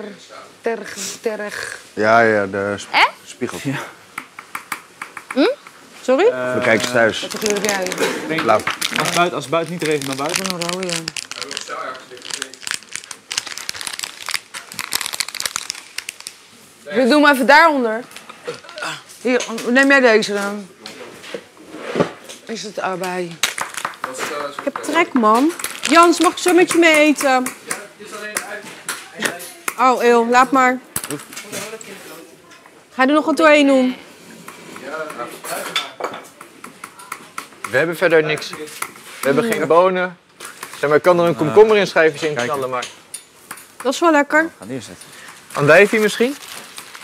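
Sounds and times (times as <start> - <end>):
crinkling and rustling: 6.7 - 16.4, 45.4 - 47.0.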